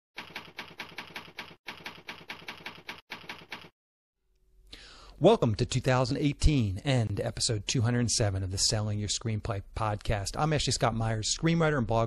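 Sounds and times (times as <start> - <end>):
typewriter keystrokes: 0.2 - 3.7.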